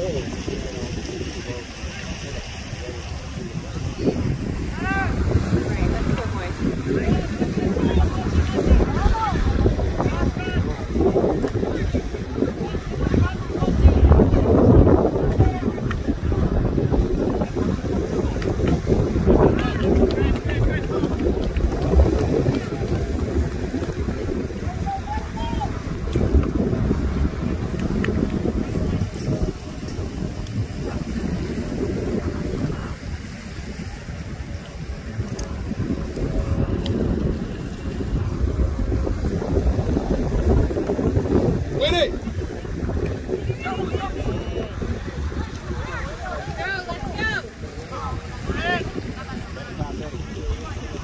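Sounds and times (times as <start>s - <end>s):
wind buffeting microphone: 0.0s - 51.0s.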